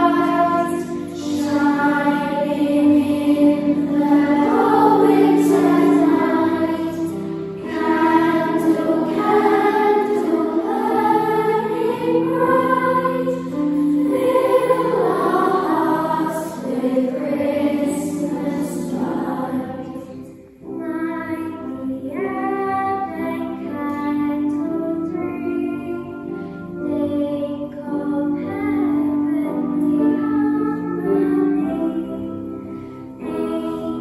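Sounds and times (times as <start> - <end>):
children's choir singing: 0.0 - 34.0.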